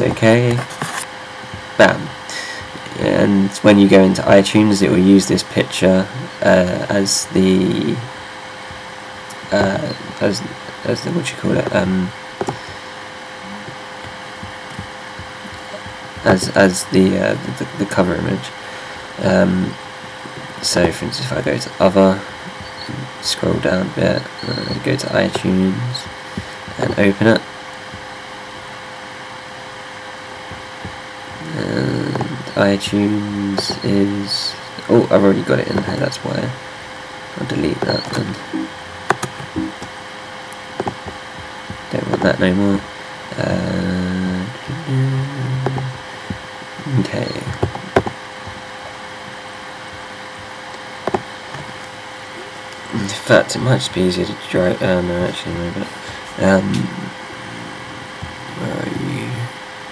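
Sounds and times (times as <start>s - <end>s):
man saying um: 0.0s - 0.7s, 1.8s - 8.1s, 9.3s - 12.7s, 13.4s - 13.8s, 14.4s - 19.8s, 20.4s - 27.4s, 31.4s - 36.6s, 37.4s - 38.7s, 41.9s - 46.0s, 46.8s - 47.6s, 52.9s - 59.6s
background hum and hiss: 0.0s - 59.9s
faint constant tone: 0.0s - 59.9s
voice murmuring: 1.5s - 8.1s, 9.3s - 27.4s, 30.5s - 36.6s, 37.4s - 39.8s, 40.9s - 48.0s, 52.3s - 59.6s.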